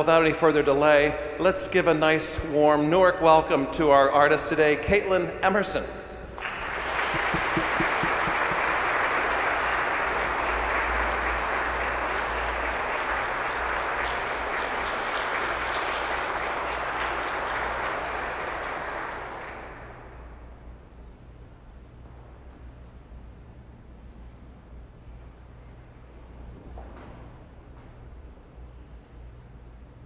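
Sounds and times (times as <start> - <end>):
audience applauding in echoing hall: 6.4 - 20.1.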